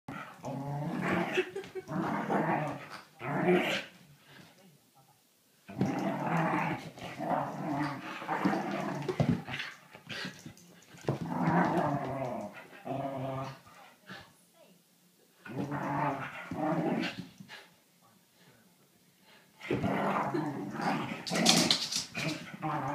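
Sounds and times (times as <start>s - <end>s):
dogs play-growling: 0.1s - 4.5s, 5.7s - 14.3s, 15.4s - 17.7s, 19.3s - 22.9s.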